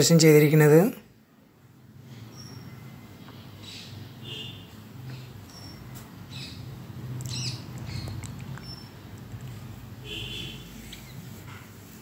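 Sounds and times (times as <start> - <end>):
finches chirping: 2.2 - 4.6, 5.4 - 9.1.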